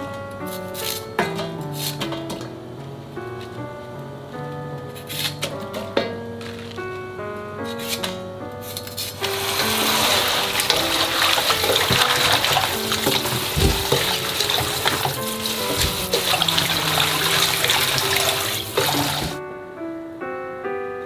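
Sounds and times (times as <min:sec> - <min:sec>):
hands stirring cabbage leaves: 0:08.7 - 0:19.4
faucet running into steel bowl: 0:09.2 - 0:19.4.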